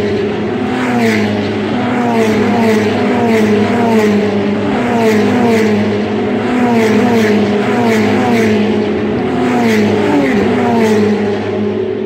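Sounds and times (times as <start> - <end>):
race car engines passing: 0.0 - 12.0.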